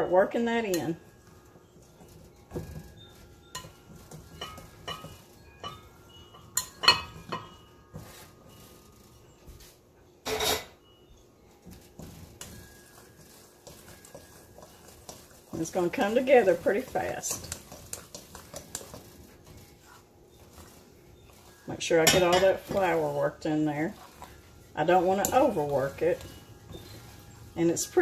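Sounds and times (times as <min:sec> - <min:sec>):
fork scraping glass bowl: 0:11.9 - 0:28.0.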